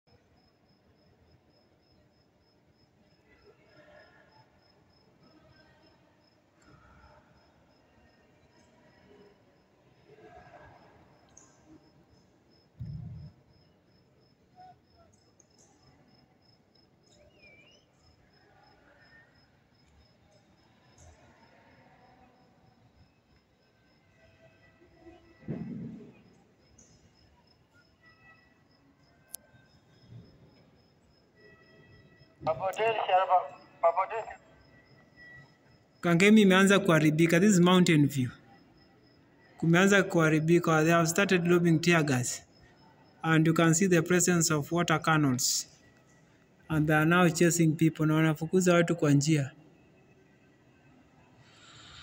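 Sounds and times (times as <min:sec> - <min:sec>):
faint outdoor background: 0:00.0 - 0:52.0.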